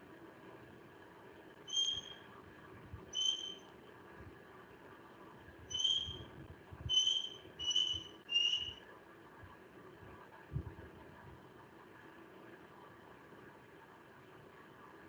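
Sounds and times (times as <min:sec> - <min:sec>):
short high whistle notes: 0:01.7 - 0:02.2, 0:03.2 - 0:03.6, 0:06.9 - 0:08.8.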